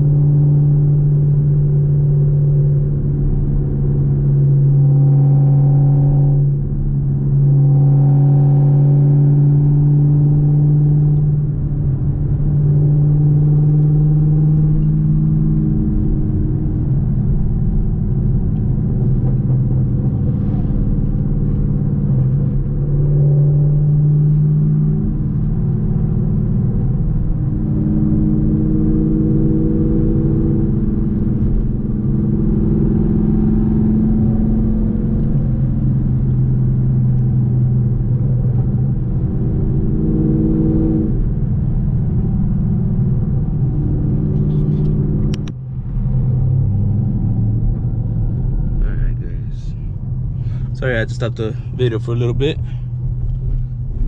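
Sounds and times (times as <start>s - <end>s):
car exhaust drone: 0.0s - 54.0s.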